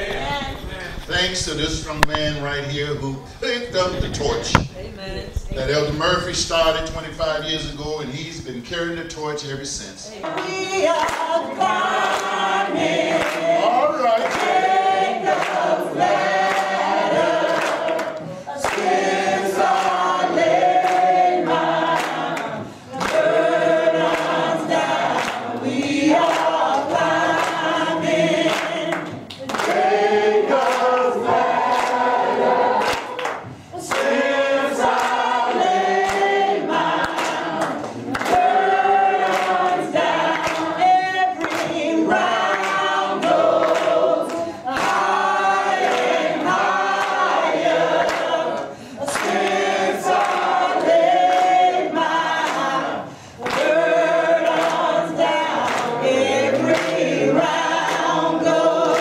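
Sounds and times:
congregation singing gospel song: 0.0s - 59.0s
hand claps in time: 14.2s - 14.6s, 32.8s - 34.1s, 39.2s - 41.8s.

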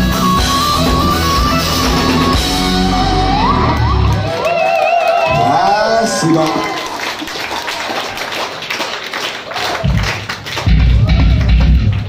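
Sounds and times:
audience clapping and calling out: 3.7s - 12.0s.

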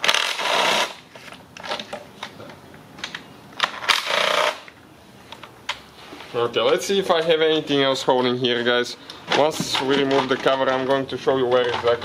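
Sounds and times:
cordless drill spinning bolts: 0.0s - 0.9s.

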